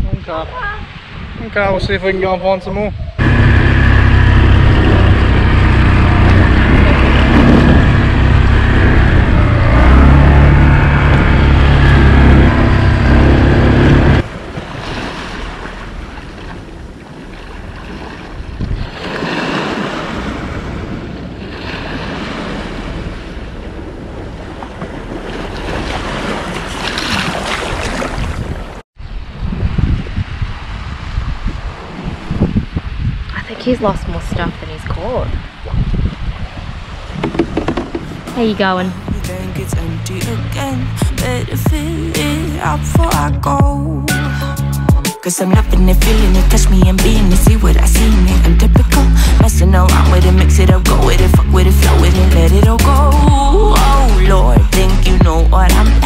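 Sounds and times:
wind buffeting microphone: 0:00.0 - 0:41.8
small waves breaking on beach: 0:14.2 - 0:39.2.

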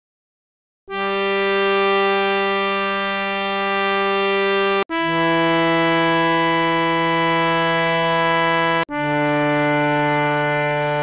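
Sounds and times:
harmonium holding a note: 0:00.9 - 0:11.0.

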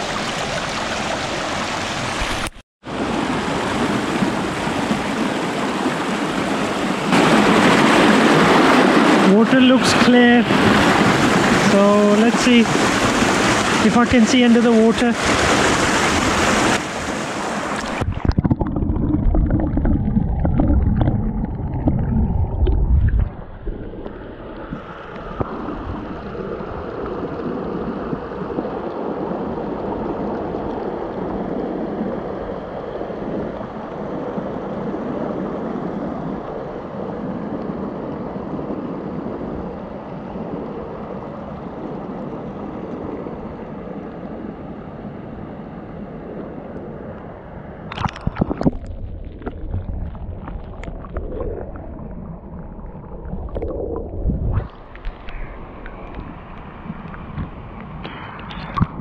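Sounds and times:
muffled underwater gurgling: 0:17.8 - 0:33.9, 0:48.4 - 0:59.0.

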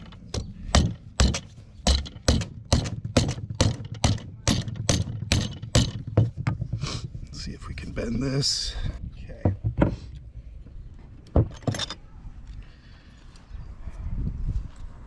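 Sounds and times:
rubber mallet striking steel: 0:00.0 - 0:06.6.

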